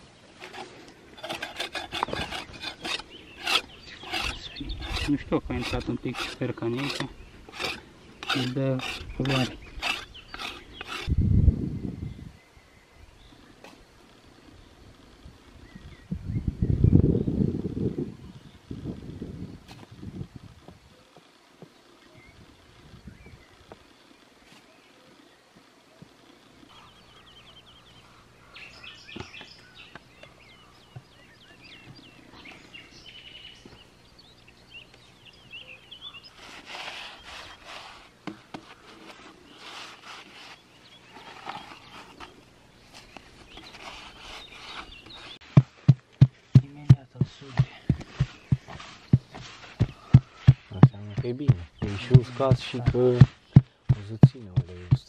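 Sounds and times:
spade scraping in earth: 0.0 - 11.2, 36.2 - 45.8, 47.5 - 55.0
birds chirping: 0.0 - 19.6, 20.7 - 55.0.

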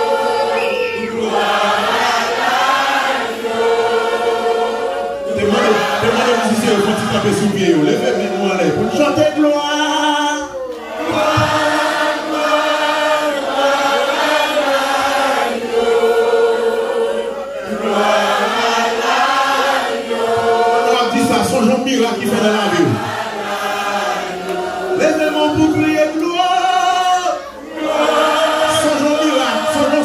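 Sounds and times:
choir and congregation singing: 0.0 - 30.0
man's voice leading singing: 5.2 - 13.0, 20.1 - 30.0.

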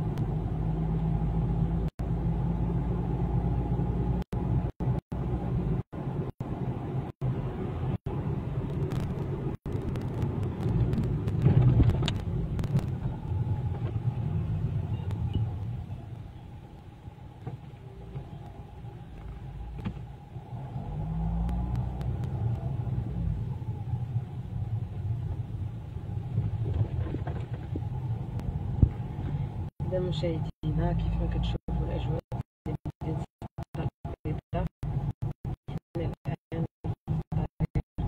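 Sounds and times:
car engine and road rumble: 0.0 - 38.0.

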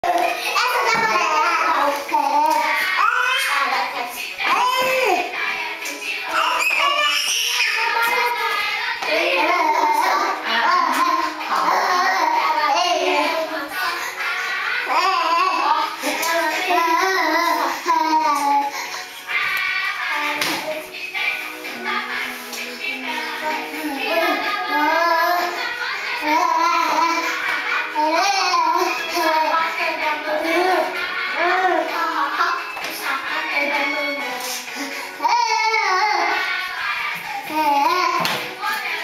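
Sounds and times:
child singing: 0.0 - 39.0
music: 0.0 - 39.0
child vocalising: 6.3 - 7.8.

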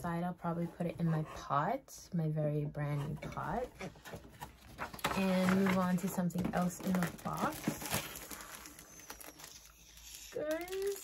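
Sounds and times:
packaging rustling and crinkling: 4.0 - 11.0.

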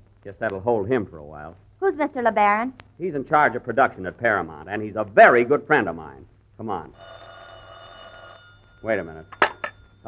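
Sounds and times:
man speaking: 0.3 - 1.6, 3.0 - 7.0, 8.8 - 9.2
telephone bell ringing: 6.9 - 10.0.

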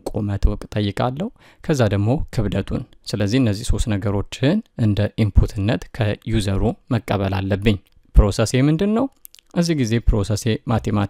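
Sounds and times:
person narrating: 0.0 - 11.0.

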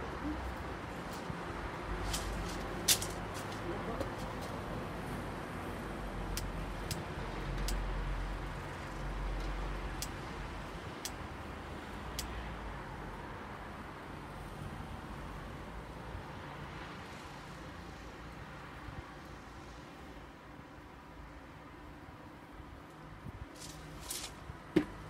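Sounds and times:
distant traffic: 0.0 - 25.0
wind: 0.0 - 25.0.

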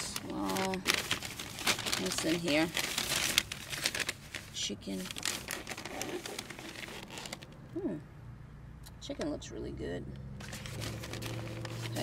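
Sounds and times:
paper bag rustling and crinkling: 0.0 - 7.6, 10.4 - 12.0.

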